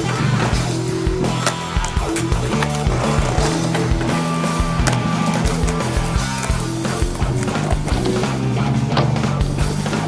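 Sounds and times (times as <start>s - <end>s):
skateboard rolling on concrete: 0.0s - 10.0s.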